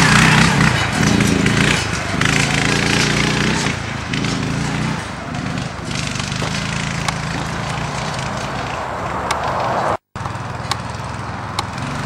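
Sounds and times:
small motorbike engine running: 0.0 - 8.8.

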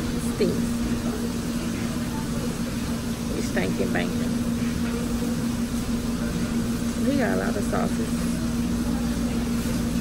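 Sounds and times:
steady mechanical hum: 0.0 - 10.0.

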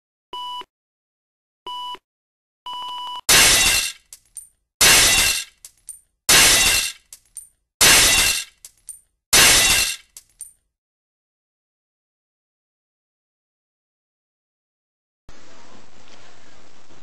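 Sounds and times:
glass shattering: 3.3 - 10.5.

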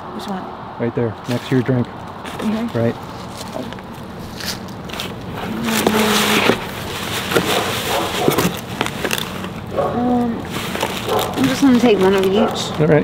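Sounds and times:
snack packages rustling: 2.3 - 13.0.

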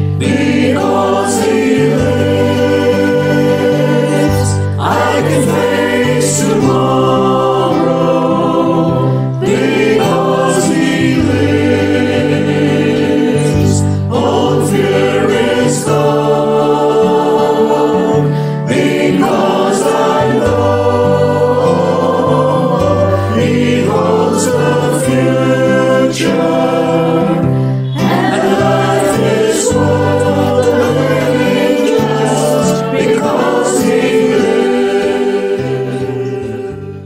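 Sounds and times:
choir singing a hymn: 0.0 - 37.0
instrumental accompaniment: 0.0 - 37.0.

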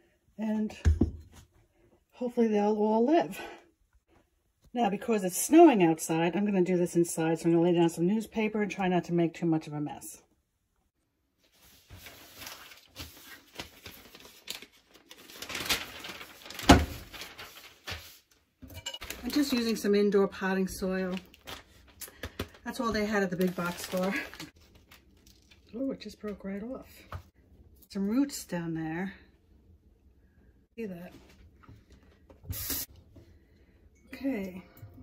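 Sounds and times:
newspaper rustling: 11.4 - 18.4, 19.0 - 20.0, 20.7 - 25.7.

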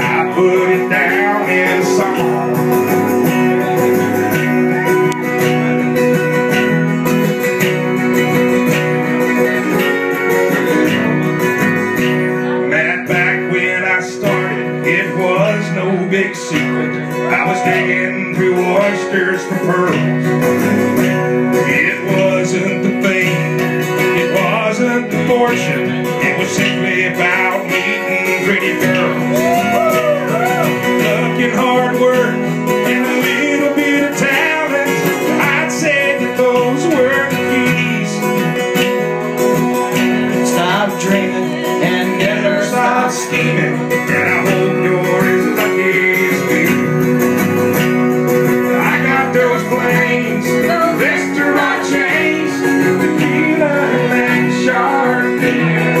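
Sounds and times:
acoustic guitar country music: 0.0 - 56.0.

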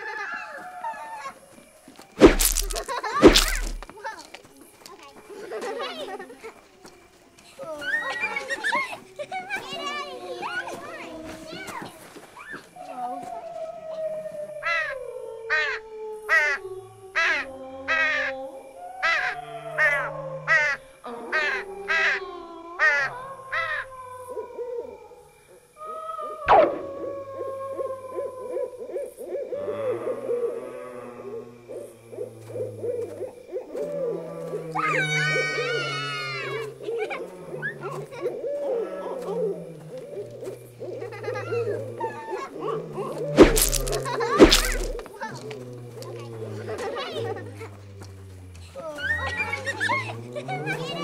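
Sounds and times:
sharp crack: 2.2 - 3.9, 43.4 - 45.1
sharp repeated animal calls: 2.2 - 3.9, 43.3 - 45.1
eerie moaning tones: 39.0 - 51.0.

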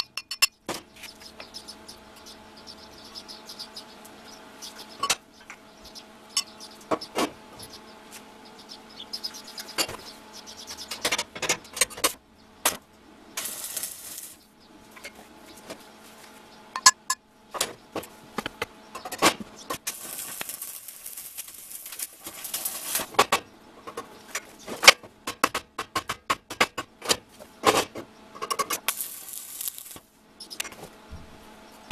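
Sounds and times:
arc-welding crackle: 13.4 - 14.4, 19.7 - 23.2, 28.7 - 30.1.

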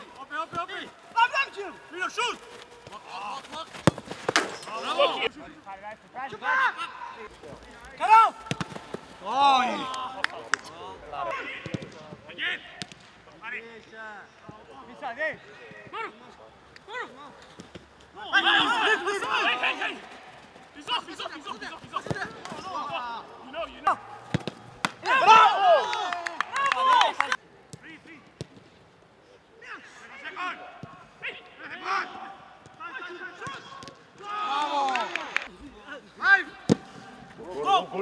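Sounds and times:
people shouting: 0.0 - 3.7, 4.6 - 5.3, 8.0 - 10.2, 18.2 - 20.2, 20.8 - 27.4, 29.6 - 35.4
football being kicked: 3.6 - 4.6, 8.4 - 9.0
men shouting: 18.2 - 20.2, 25.0 - 27.2.

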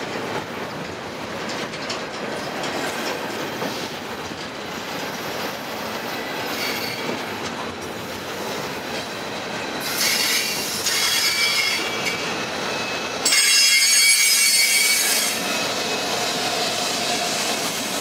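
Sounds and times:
rail cars rumbling past: 0.0 - 18.0
train wheels clacking over rail joints: 0.0 - 18.0
high wheel squeal: 6.2 - 7.2, 8.4 - 18.0.

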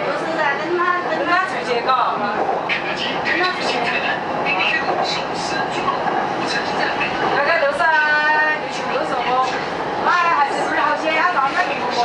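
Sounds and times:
people talking: 0.0 - 12.0
train rumbling at speed: 0.0 - 12.0.

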